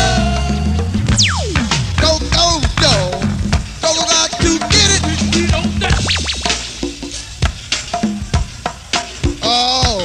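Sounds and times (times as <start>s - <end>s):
sharp drum hits: 1.0s - 8.6s.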